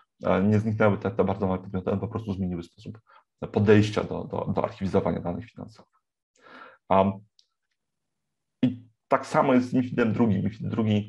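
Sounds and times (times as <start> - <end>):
faint breath: 6.4 - 6.9.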